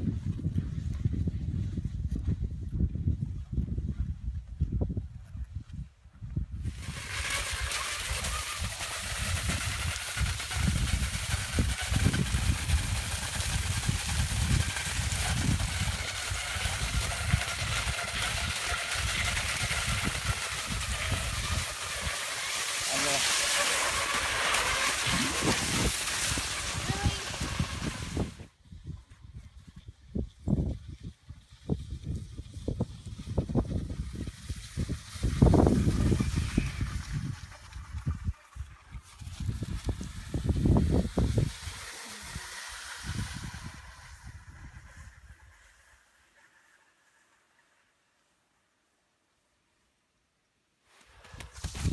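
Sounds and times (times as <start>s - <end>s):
wind buffeting microphone: 0.0s - 22.2s, 23.2s - 45.4s
skis hissing on snow: 6.6s - 28.5s, 34.0s - 47.7s, 50.9s - 51.9s.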